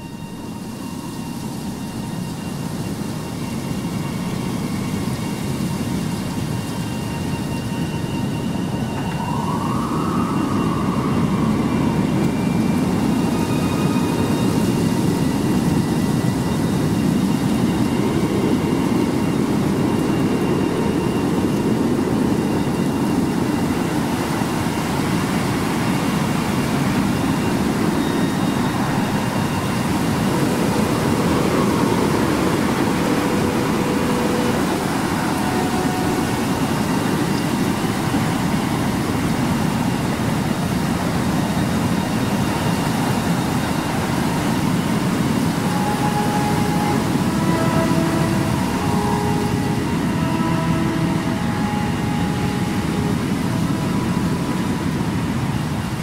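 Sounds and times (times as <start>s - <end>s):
dark rumbling drone: 0.0s - 56.0s
faint held tones: 22.4s - 39.8s, 43.6s - 54.8s.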